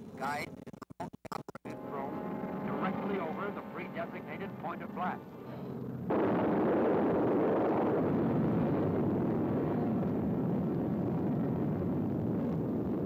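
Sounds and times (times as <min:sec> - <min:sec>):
explosion rumble roaring: 0:06.0 - 0:13.0.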